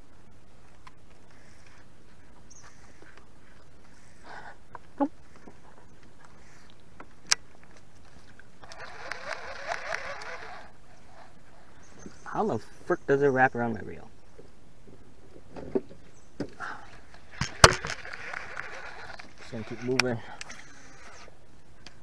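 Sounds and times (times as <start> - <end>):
fishing reel rasping whir: 8.6 - 11.7, 17.2 - 21.4.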